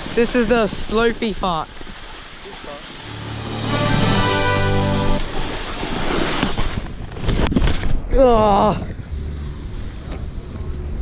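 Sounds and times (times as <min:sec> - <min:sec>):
snowboard scraping on snow: 0:02.7 - 0:07.8
buzzing drone: 0:02.9 - 0:05.6.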